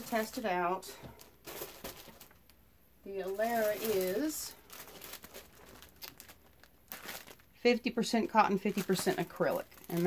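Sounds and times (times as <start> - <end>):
plastic bag crinkling: 0.0 - 10.0.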